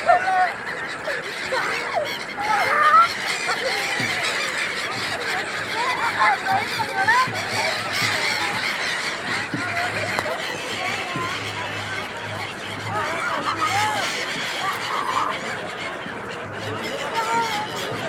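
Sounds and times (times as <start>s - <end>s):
faint voices: 0.0s - 18.0s
gulls calling: 0.0s - 18.0s.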